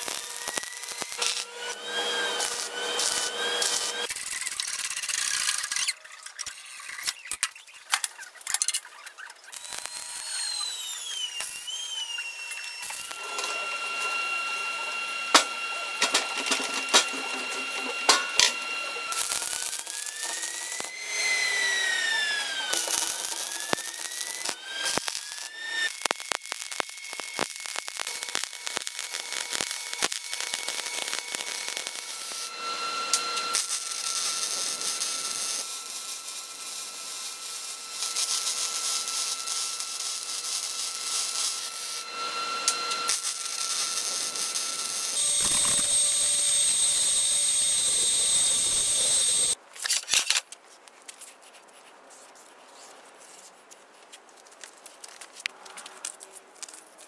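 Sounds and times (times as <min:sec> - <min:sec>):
arc welding crackle: 0:00.0 - 0:49.6
power tool whines: 0:00.0 - 0:49.6.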